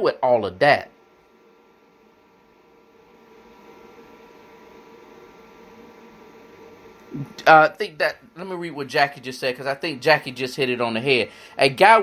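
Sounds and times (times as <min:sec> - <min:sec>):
room tone hiss and hum: 0:00.0 - 0:12.0
thin steady tones: 0:00.0 - 0:12.0.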